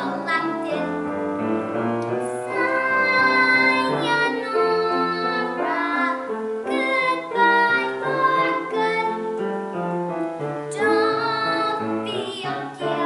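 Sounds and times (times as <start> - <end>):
girl singing show tune: 0.0 - 1.4, 2.2 - 9.5, 10.6 - 13.0
piano accompaniment: 0.0 - 13.0.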